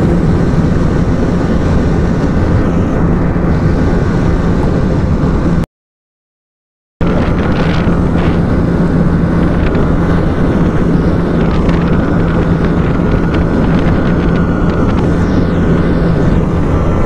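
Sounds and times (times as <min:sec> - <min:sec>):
wind buffeting microphone: 0:00.0 - 0:05.6, 0:07.0 - 0:17.0
motorcycle engine at high revs: 0:07.0 - 0:17.0.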